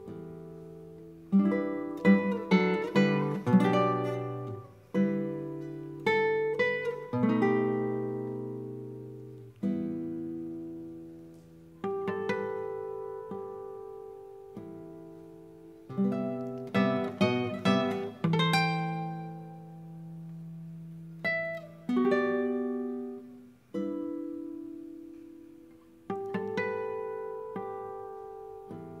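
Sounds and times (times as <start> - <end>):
classical guitar playing: 0.0 - 29.0.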